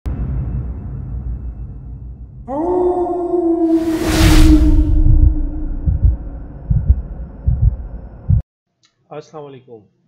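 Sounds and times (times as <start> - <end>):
deep bass thuds: 4.8 - 8.4.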